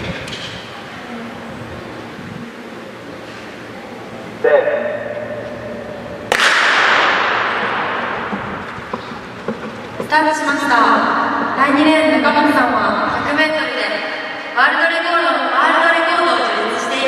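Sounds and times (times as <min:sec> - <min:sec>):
starter's call over loudspeakers: 0:04.4 - 0:05.5
starting gun crack with echo: 0:06.2 - 0:09.3.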